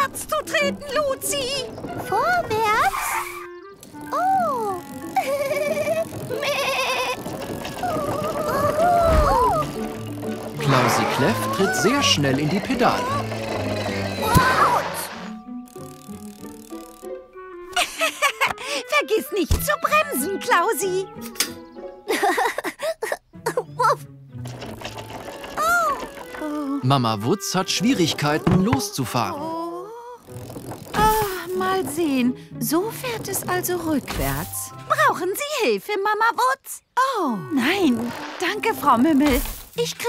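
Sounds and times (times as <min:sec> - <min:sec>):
soft background music: 0:00.0 - 0:06.7, 0:08.3 - 0:35.8
go-kart rattling: 0:00.0 - 0:17.1, 0:24.4 - 0:29.4, 0:30.2 - 0:35.2
sliding tones: 0:00.3 - 0:17.1.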